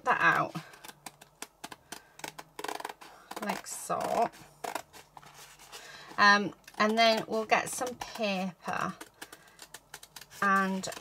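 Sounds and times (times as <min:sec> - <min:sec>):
scissors snipping canvas: 0:06.5 - 0:11.0.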